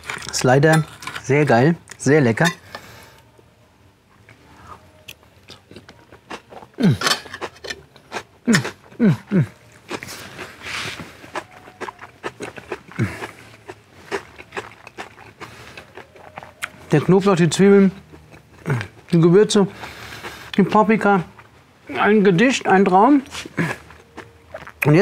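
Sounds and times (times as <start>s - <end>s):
man chewing food: 4.2s - 22.1s, 23.0s - 25.0s
man humming with enjoyment: 8.5s - 9.7s.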